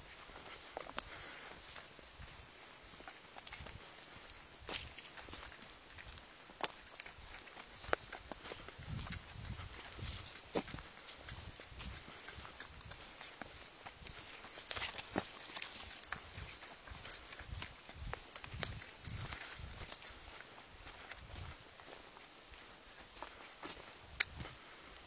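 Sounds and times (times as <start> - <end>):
footsteps on dirt trail: 0.0 - 25.0.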